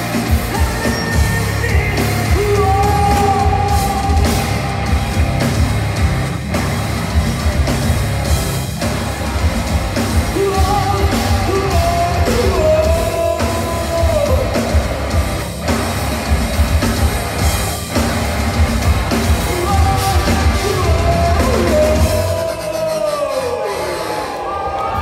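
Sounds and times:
metal band playing live: 0:00.0 - 0:25.0.

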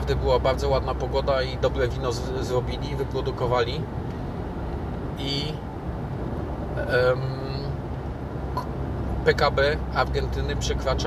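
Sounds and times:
car driving on paved road: 0:00.0 - 0:11.0.

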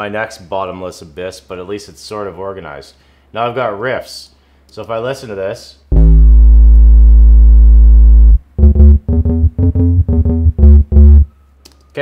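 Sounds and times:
bass instrument notes: 0:05.9 - 0:11.3.

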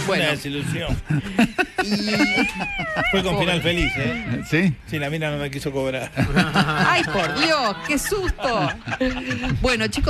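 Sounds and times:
person's high-pitched wavering cry: 0:01.9 - 0:04.6.

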